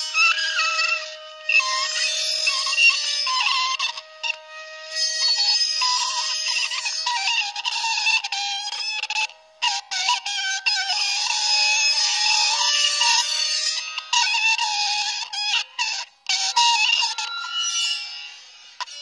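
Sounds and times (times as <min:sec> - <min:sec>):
high squealing whistling tones: 0:00.0 - 0:19.0.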